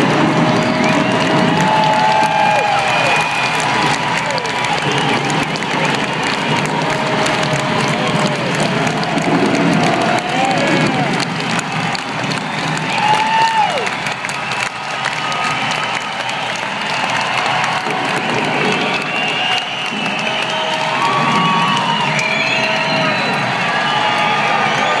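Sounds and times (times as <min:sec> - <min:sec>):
arena crowd cheering and applauding: 0:00.0 - 0:25.0
shouts and whoops: 0:00.0 - 0:25.0.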